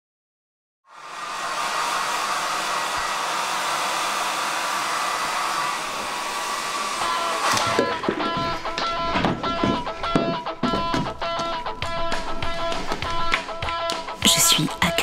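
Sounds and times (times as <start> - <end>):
plucked guitar music: 7.7 - 14.2.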